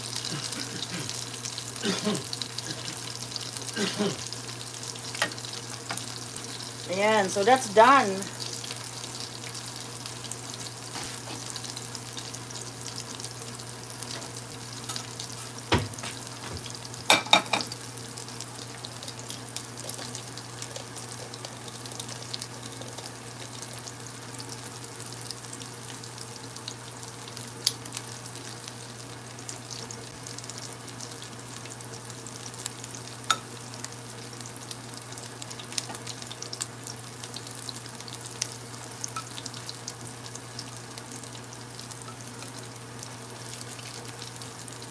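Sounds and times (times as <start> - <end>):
food sizzling in hot oil: 0.0 - 44.9.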